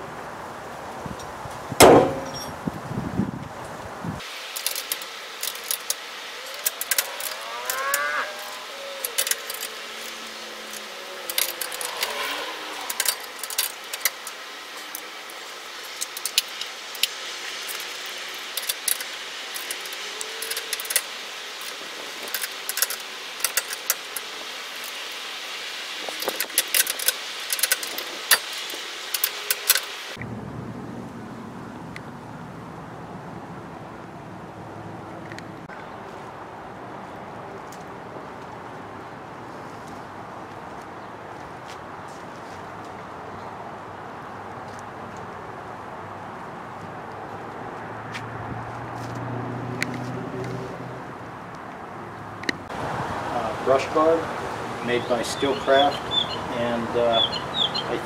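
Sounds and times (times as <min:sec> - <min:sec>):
steady background noise: 0:00.0 - 0:58.0
loud knock: 0:01.8 - 0:02.4.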